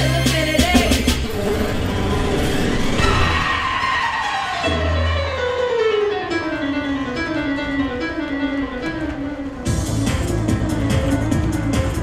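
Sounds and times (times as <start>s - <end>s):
low beats: 0.5s - 12.0s
rumbling noise sound effect: 1.0s - 4.6s.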